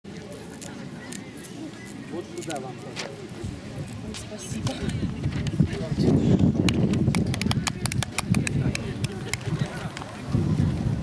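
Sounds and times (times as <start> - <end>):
voices: 0.1 - 11.0.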